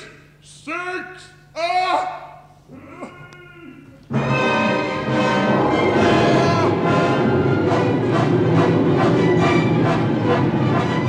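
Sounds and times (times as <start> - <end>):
person exclaiming words: 0.5 - 4.0.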